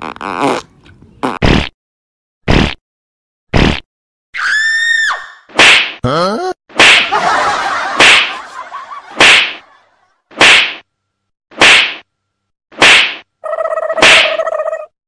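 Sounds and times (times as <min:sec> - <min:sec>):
whip-like crack: 0:05.5 - 0:06.0, 0:06.7 - 0:07.1, 0:08.0 - 0:08.4, 0:09.2 - 0:09.6, 0:10.3 - 0:10.8, 0:11.6 - 0:12.0, 0:12.8 - 0:13.3, 0:14.0 - 0:14.3.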